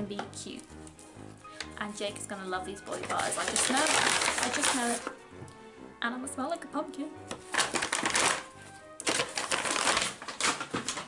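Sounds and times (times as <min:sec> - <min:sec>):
paper bags and packaging rustling: 0:00.8 - 0:05.2, 0:07.3 - 0:11.0.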